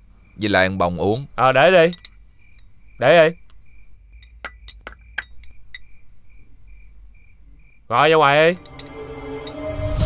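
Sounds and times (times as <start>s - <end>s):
cricket chirping: 0.0s - 10.0s
spoon clinking against bowl: 1.8s - 2.7s, 3.4s - 5.9s, 8.5s - 9.7s.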